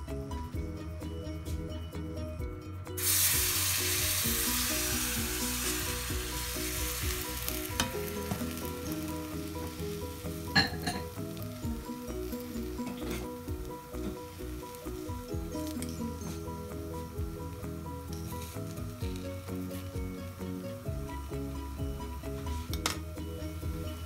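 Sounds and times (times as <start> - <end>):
batter sizzling in frying pan: 3.0 - 24.0.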